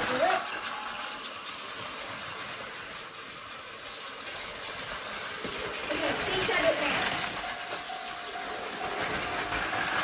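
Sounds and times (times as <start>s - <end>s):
toy trains whirring on track: 0.0s - 10.0s.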